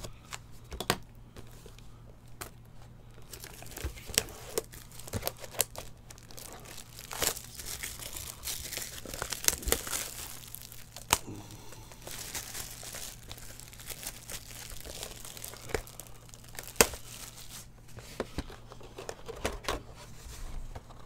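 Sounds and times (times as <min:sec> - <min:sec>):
plastic shrink-wrap tearing and crinkling: 0:03.2 - 0:17.7.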